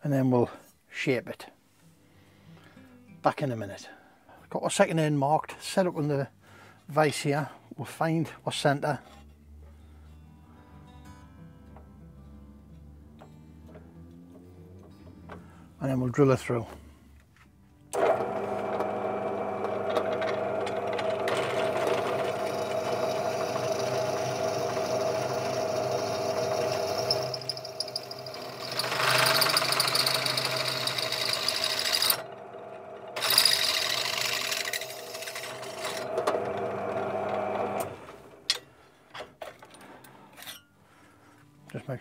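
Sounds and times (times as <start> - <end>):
pillar drill motor humming: 17.9 - 38.4
drill bit cutting steel: 18.0 - 32.4, 33.1 - 37.9.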